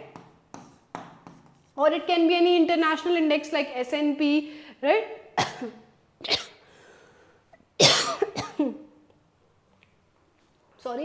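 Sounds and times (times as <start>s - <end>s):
woman coughing: 5.4s - 6.6s, 7.8s - 8.9s.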